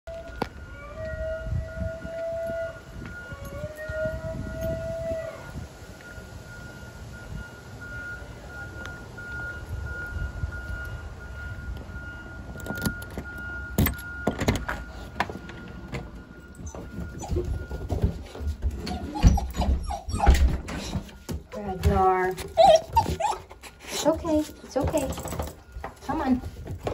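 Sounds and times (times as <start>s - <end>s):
puppy whining: 16.6s - 21.2s, 22.4s - 24.4s
puppy howling: 18.8s - 20.9s, 22.5s - 23.5s.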